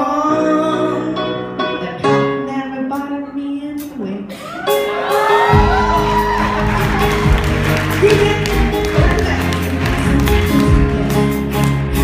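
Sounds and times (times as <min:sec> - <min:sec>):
rock band playing loud: 0:04.6 - 0:12.0.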